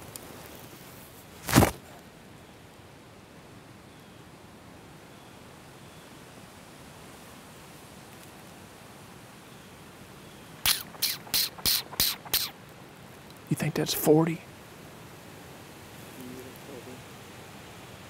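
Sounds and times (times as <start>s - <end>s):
faint outdoor hiss: 0.0s - 18.0s
short sharp sounds: 10.7s - 12.5s.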